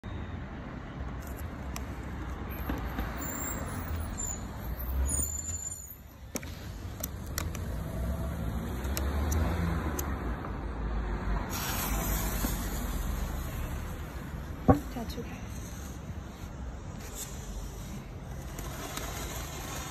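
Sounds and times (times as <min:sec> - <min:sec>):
low street rumble: 0:00.0 - 0:19.9
brief fuse hiss: 0:11.5 - 0:13.4.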